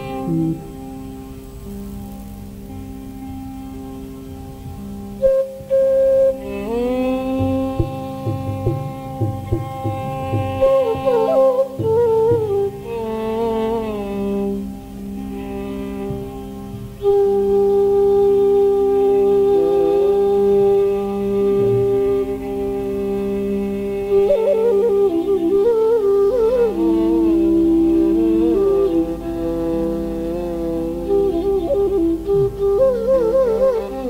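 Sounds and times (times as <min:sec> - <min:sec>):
bamboo flute playing: 0:00.0 - 0:34.0.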